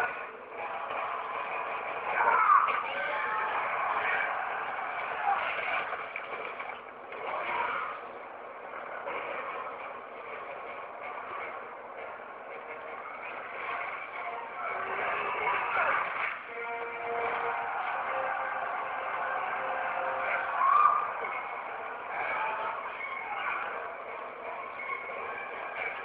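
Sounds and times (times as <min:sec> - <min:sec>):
action film soundtrack: 0:00.0 - 0:26.0.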